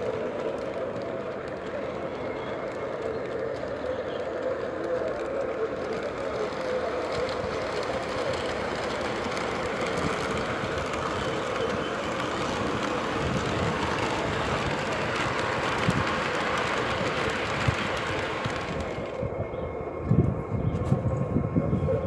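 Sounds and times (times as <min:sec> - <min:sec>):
model train running on track: 0:00.0 - 0:22.0.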